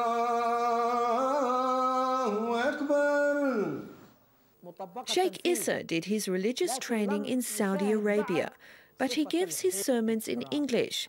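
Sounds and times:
man chanting call to prayer: 0.0 - 3.9.

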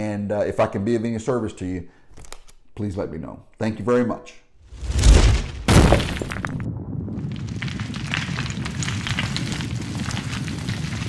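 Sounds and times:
small crackles and snaps: 7.3 - 11.0.

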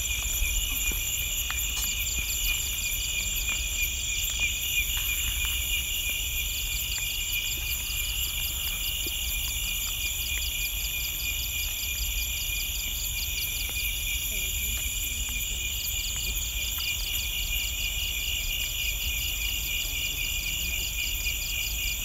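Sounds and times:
crickets trilling: 0.0 - 22.0.

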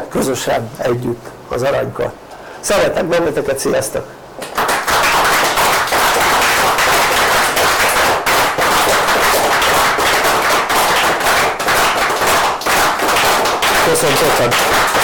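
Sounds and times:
audience applauding loudly: 4.4 - 15.0.

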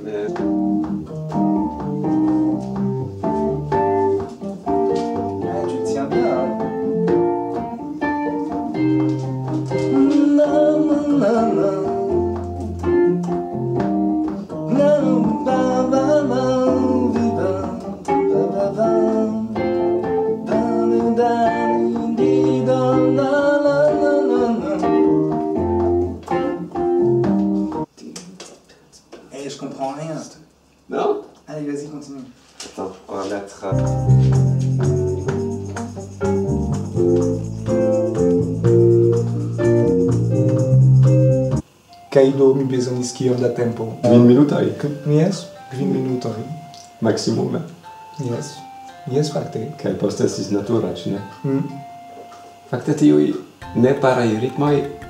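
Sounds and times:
keyboard playing chords and melody: 0.0 - 27.9, 33.7 - 55.0.

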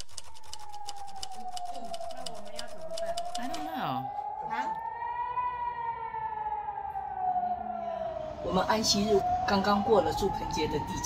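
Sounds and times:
air raid siren wailing: 0.0 - 11.0.

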